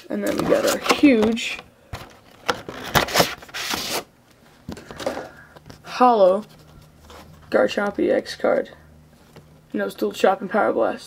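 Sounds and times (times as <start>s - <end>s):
plastic packaging scraping: 0.2s - 1.2s, 2.0s - 4.1s.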